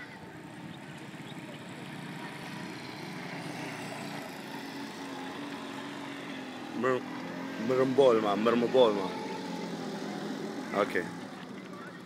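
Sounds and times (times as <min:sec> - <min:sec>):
outdoor background noise: 0:00.0 - 0:12.0
vehicle engine humming: 0:00.0 - 0:12.0.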